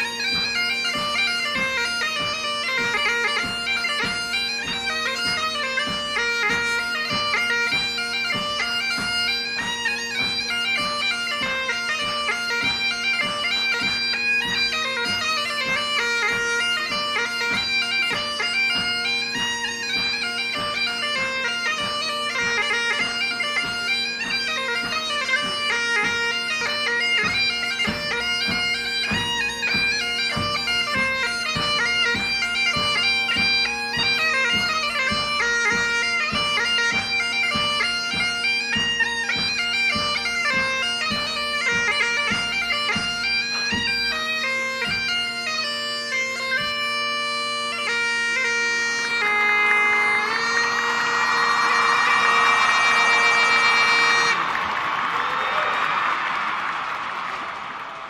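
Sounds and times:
bagpipes playing a tune: 0.0 - 54.5
crowd applause: 50.2 - 58.0.

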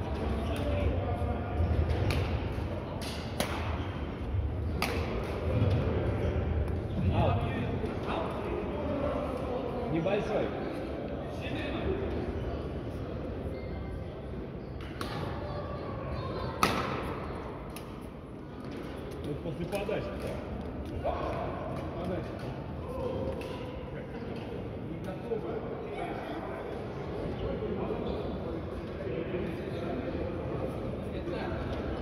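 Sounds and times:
echoing sports hall murmur: 0.0 - 32.0
racket smacking shuttlecock: 4.7 - 5.4.

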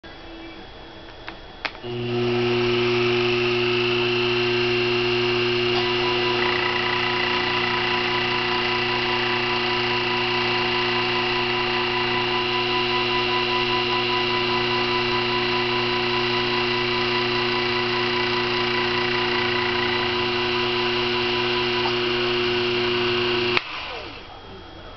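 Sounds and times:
mill motor whine: 1.2 - 24.9.

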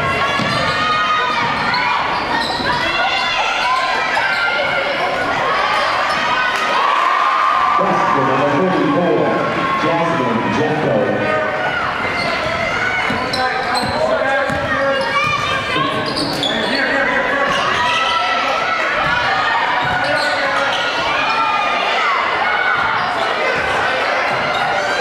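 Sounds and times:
voices talking and calling out: 0.0 - 25.0.

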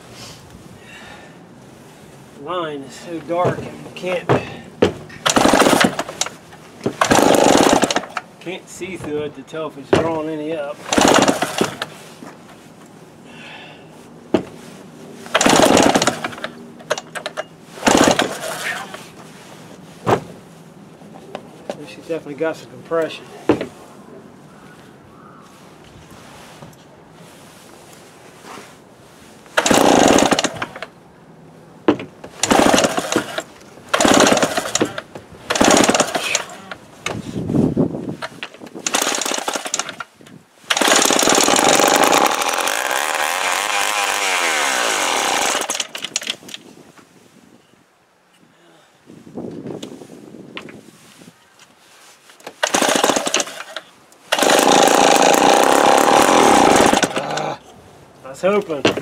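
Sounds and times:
chainsaw engine starting and running: 2.6 - 9.1, 10.7 - 12.0, 15.2 - 19.0, 29.6 - 31.0, 32.4 - 36.8, 38.3 - 40.1, 40.7 - 46.4, 52.6 - 57.7.

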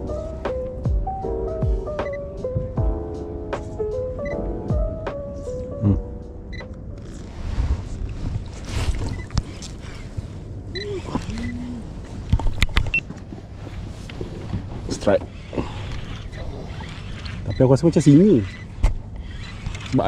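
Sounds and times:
wind noise: 7.0 - 20.0
water noise: 13.7 - 20.0.

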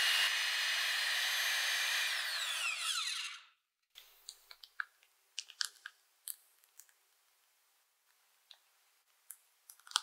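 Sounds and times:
plastic piping bag crinkling: 4.2 - 7.0.

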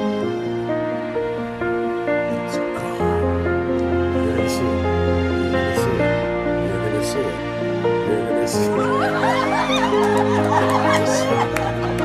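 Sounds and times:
slow background music: 0.0 - 12.0
women laughing excitedly: 8.8 - 12.0.

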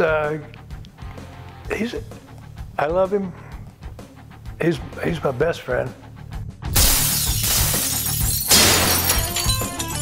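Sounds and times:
window glass shattering: 6.7 - 10.0.

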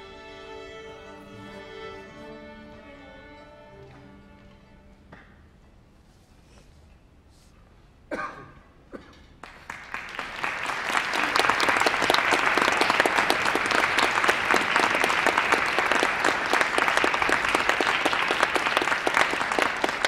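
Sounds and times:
audience applauding: 9.4 - 20.0.

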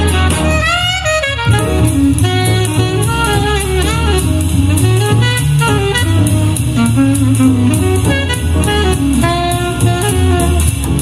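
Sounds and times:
jazz music through speaker: 0.0 - 11.0.

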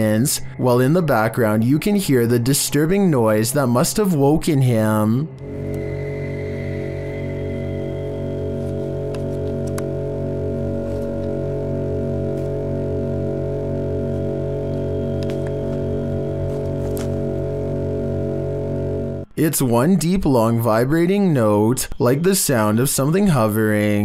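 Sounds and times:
deep vibrating drone: 0.0 - 19.4.

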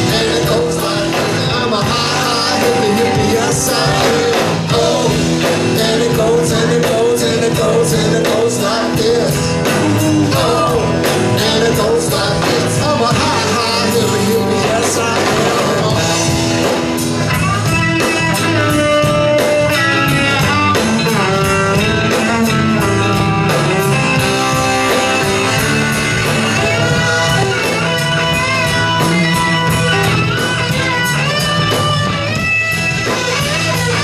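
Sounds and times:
bass guitar: 0.0 - 34.0
electric guitar lead with bent notes: 0.0 - 34.0
steady drum beat: 0.0 - 34.0.

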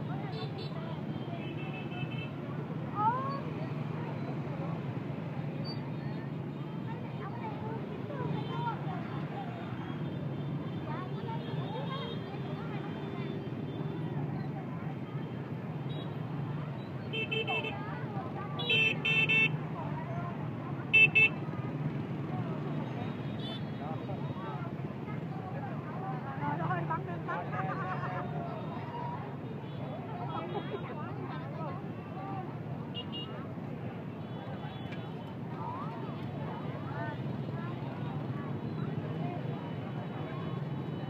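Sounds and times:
people chattering: 0.0 - 41.0.

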